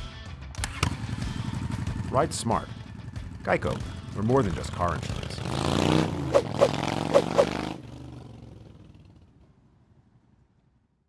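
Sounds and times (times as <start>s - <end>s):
motorcycle engine running: 1.0s - 9.3s.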